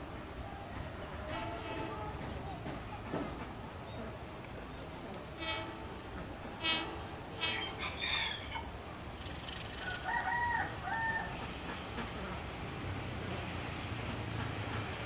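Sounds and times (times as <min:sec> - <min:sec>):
distant diesel train rumble: 0:00.0 - 0:15.0
chickens clucking: 0:00.1 - 0:15.0
rooster crowing: 0:06.8 - 0:08.8, 0:09.8 - 0:11.5.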